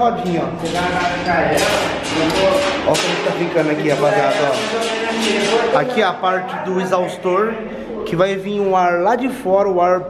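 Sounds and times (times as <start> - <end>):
men speaking: 0.0 - 10.0.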